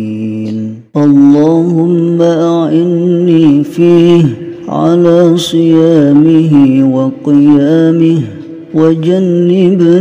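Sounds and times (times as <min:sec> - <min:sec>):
person chanting melodically: 0:00.0 - 0:10.0.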